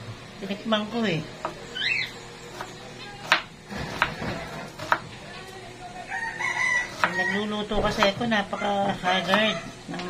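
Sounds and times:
rooster crowing: 6.1s - 9.9s.

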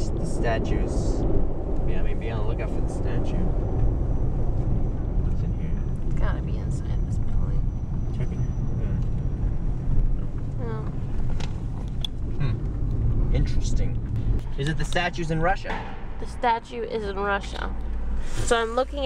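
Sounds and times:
car engine and road rumble: 0.0s - 19.0s
car bump: 10.2s - 16.4s.

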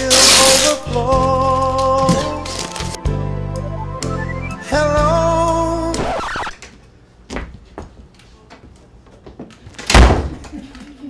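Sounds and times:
door slamming shut: 9.8s - 10.5s.

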